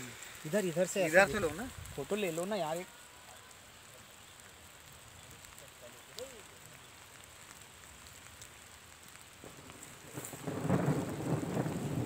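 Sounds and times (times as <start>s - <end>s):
faint outdoor hiss: 0.0s - 12.0s
rustling through wheat: 9.6s - 12.0s.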